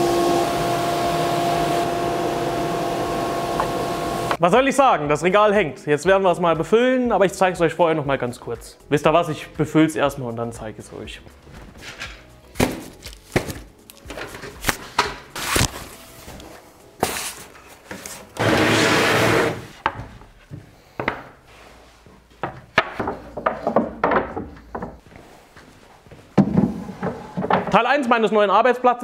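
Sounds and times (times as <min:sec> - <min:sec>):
music: 0:04.4 - 0:29.0
cardboard and wood knocks: 0:22.4 - 0:25.0, 0:26.4 - 0:27.8.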